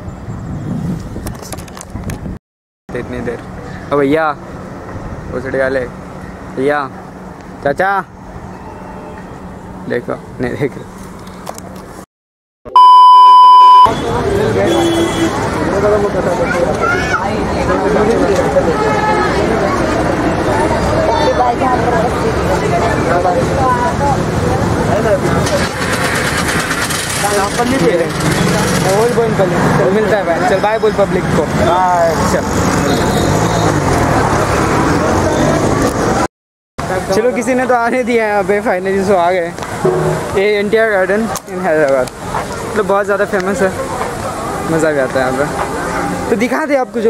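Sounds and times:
low rumble of road traffic: 0:00.0 - 0:12.0, 0:13.6 - 0:47.0
people talking: 0:13.9 - 0:25.8, 0:27.1 - 0:33.2, 0:40.2 - 0:47.0.

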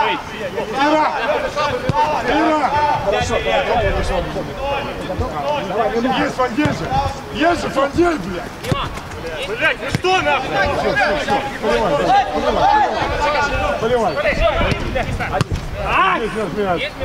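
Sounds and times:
players shouting: 0:00.0 - 0:17.0
ball being kicked: 0:08.6 - 0:09.2, 0:09.9 - 0:10.3.

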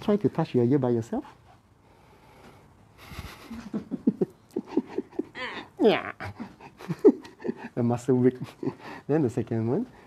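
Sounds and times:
person laughing in breathy bursts: 0:03.0 - 0:07.8.

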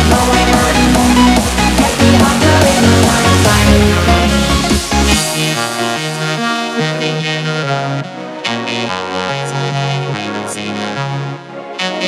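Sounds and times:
synthesizer dance music: 0:00.0 - 0:12.0.

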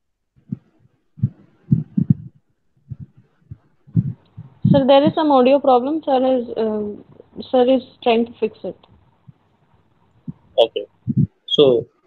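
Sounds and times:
muffled low thumps: 0:00.4 - 0:05.8, 0:06.6 - 0:11.8.

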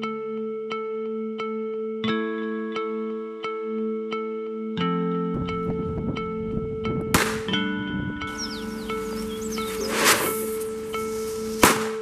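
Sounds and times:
background music: 0:00.0 - 0:12.0
handgun firing: 0:07.2 - 0:07.6, 0:11.6 - 0:12.0
firecrackers going off: 0:09.6 - 0:12.0.

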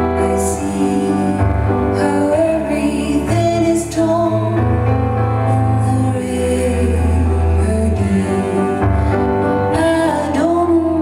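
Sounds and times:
piano: 0:00.0 - 0:11.0.

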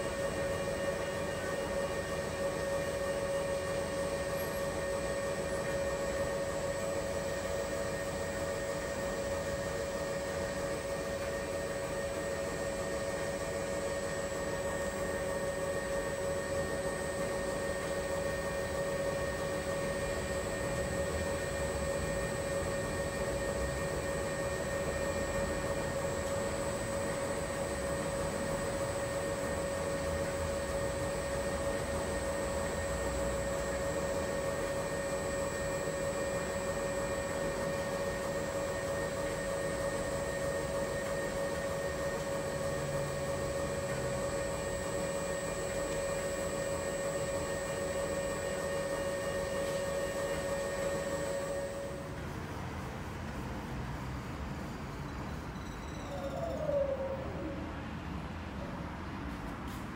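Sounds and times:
washing machine motor whine: 0:00.0 - 0:59.9.

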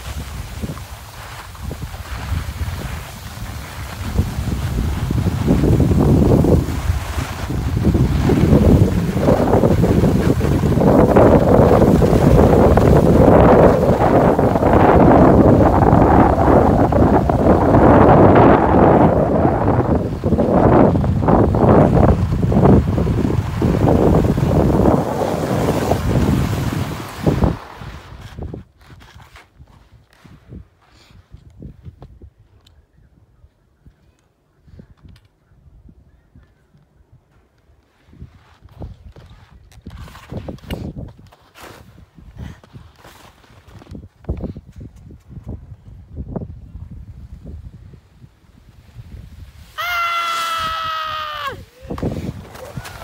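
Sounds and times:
wind rushing over microphone: 0:00.0 - 0:28.8, 0:41.9 - 0:53.0
skis sliding on snow: 0:00.0 - 0:31.5, 0:37.8 - 0:45.5, 0:46.2 - 0:53.0.

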